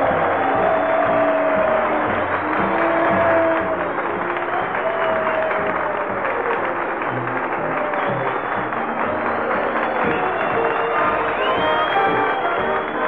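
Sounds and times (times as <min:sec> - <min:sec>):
audience applauding: 0:00.0 - 0:13.0.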